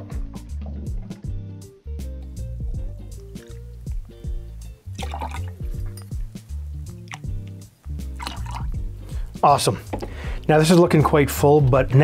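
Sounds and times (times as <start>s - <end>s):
background music: 0.0s - 12.0s
juice pouring into a glass: 3.3s - 4.0s, 4.9s - 6.1s, 8.0s - 8.9s.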